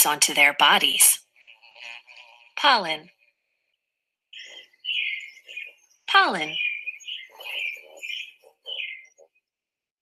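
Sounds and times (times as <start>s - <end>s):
bird chirping: 4.3s - 9.8s.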